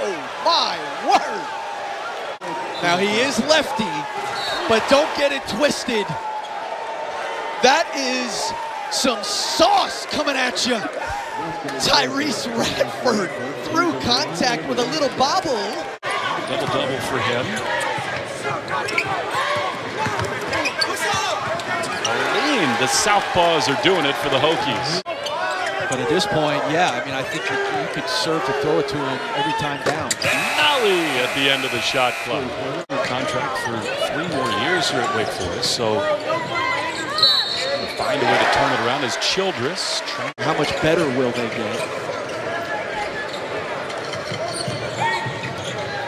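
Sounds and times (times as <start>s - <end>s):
crowd noise: 0.0s - 46.0s.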